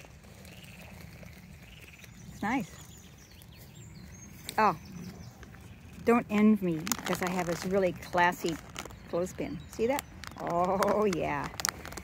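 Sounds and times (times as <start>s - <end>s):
frogs croaking: 0.0s - 3.2s.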